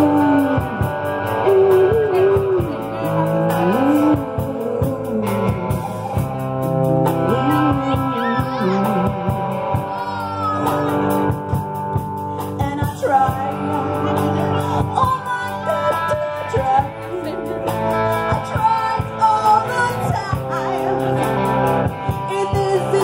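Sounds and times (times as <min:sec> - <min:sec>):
woman singing: 0:00.0 - 0:06.2, 0:06.8 - 0:11.3, 0:12.4 - 0:23.0
live rock band playing: 0:00.0 - 0:23.0.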